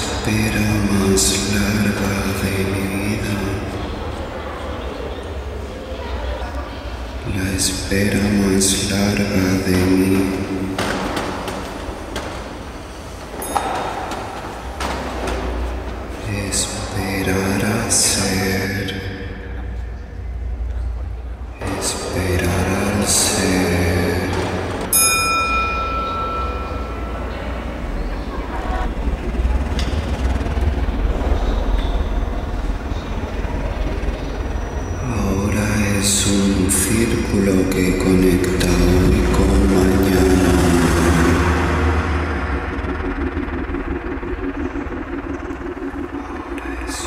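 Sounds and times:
steady low rumble: 0:00.0 - 0:13.4, 0:14.0 - 0:47.0
struck metallic ring: 0:13.3 - 0:14.5, 0:24.9 - 0:27.6.

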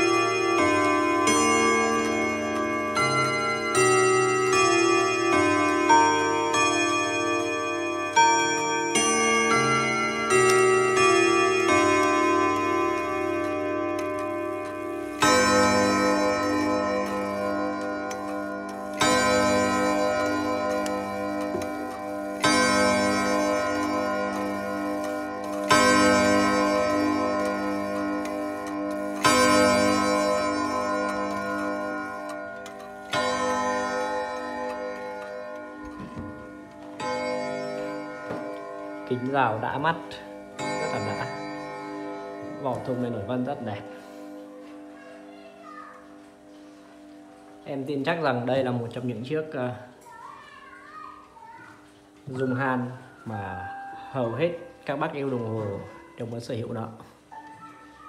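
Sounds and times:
clock gong striking: 0:00.0 - 0:43.5
clock chime melody: 0:00.0 - 0:49.9, 0:50.8 - 0:58.0.

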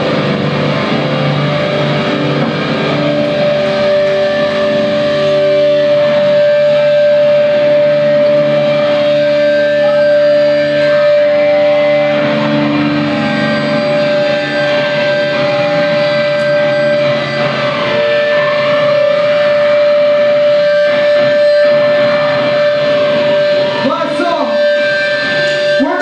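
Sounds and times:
distorted electric guitar: 0:00.0 - 0:26.0
hardcore band playing live: 0:00.0 - 0:26.0
steady held high tone: 0:00.0 - 0:26.0.

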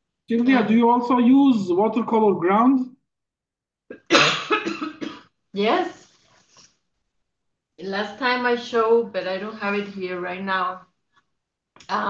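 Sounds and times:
woman coughing: 0:03.9 - 0:05.3.

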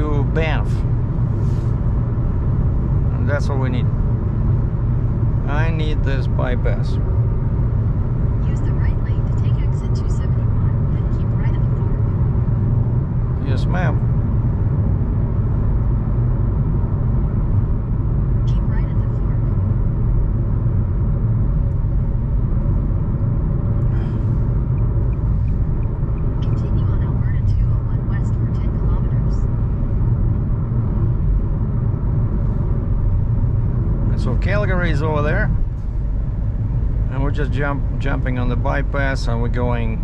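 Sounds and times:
car engine and tyre drone: 0:00.0 - 0:40.0.

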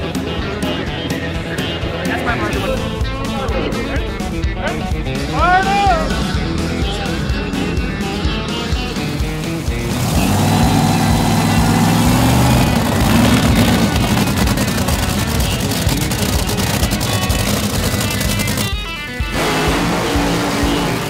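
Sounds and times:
background music: 0:00.0 - 0:21.0
dragster engine rattling: 0:00.0 - 0:21.0.

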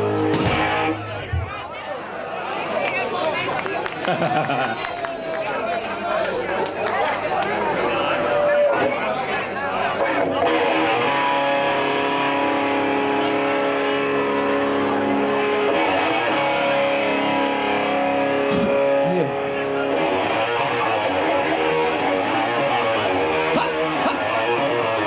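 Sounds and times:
electric guitars playing held chords: 0:00.0 - 0:01.2, 0:09.9 - 0:25.0.

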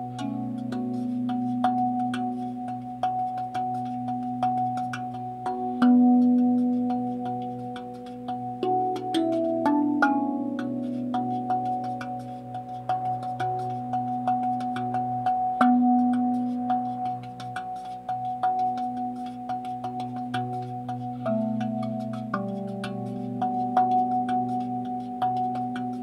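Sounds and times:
low sustained tone: 0:00.0 - 0:26.0
steel tongue drum tapped: 0:00.0 - 0:26.0.

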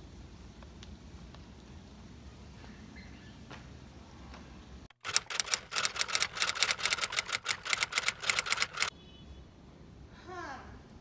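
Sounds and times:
typewriter key clacks: 0:05.1 - 0:08.9.

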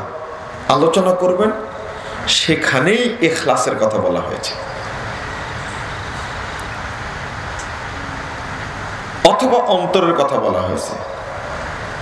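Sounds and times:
steady rumbling background noise: 0:00.0 - 0:12.0.

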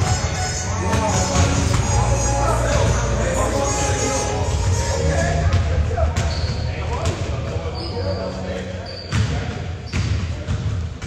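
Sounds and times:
indistinct voices: 0:00.0 - 0:09.4
basketballs bouncing on hardwood floor: 0:09.1 - 0:11.0.

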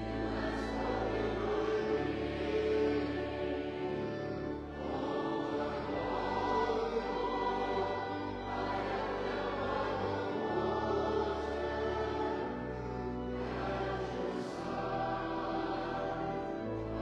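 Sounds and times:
choir singing a hymn: 0:00.0 - 0:17.0
low accompanying notes: 0:00.0 - 0:17.0.

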